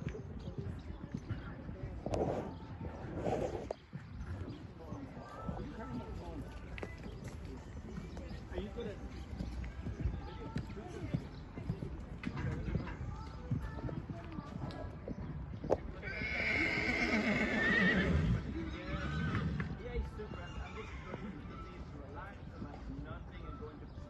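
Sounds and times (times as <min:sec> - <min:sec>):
hoofbeats on sand: 0:00.0 - 0:24.0
horse whinnying: 0:16.0 - 0:19.7, 0:20.6 - 0:21.6.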